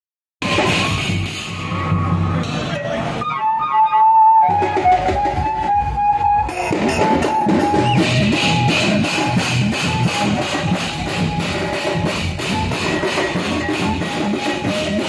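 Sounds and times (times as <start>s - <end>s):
electronic drum pad beats: 0.4s - 15.0s.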